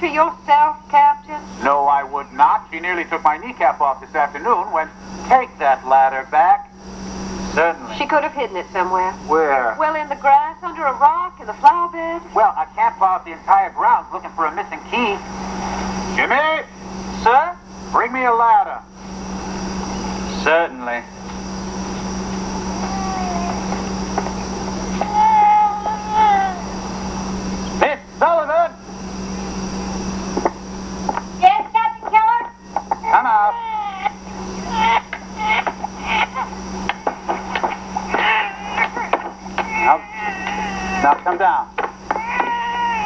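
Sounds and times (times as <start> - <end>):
steady low hum: 0.0 - 43.0
high-pitched voices chattering: 22.7 - 23.9, 24.9 - 26.8, 31.4 - 37.0, 38.1 - 41.2.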